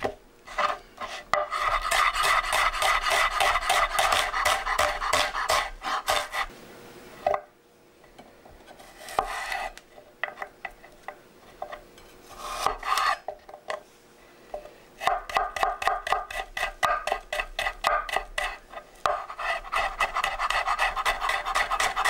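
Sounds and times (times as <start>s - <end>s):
knife cutting on wooden board: 0.0s - 6.5s, 12.3s - 13.3s, 15.0s - 22.0s.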